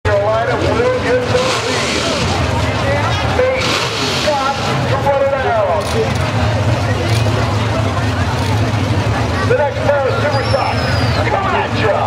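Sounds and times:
car engines idling low rumble: 0:00.1 - 0:12.0
people's voices: 0:00.1 - 0:12.0.

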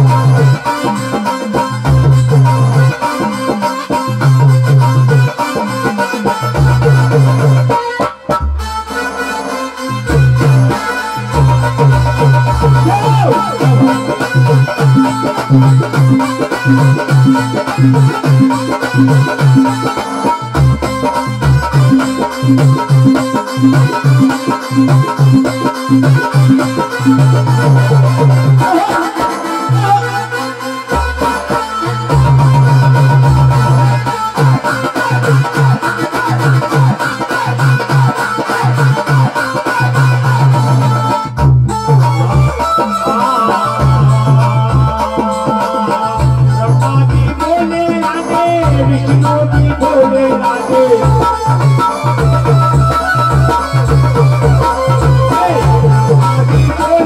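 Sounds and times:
keyboard reedy melody: 0:00.0 - 0:57.0.

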